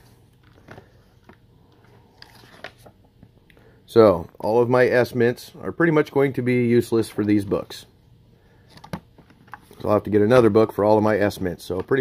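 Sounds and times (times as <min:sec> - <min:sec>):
faint low hum: 0:00.0 - 0:12.0
cardboard folder rustling: 0:02.0 - 0:03.0.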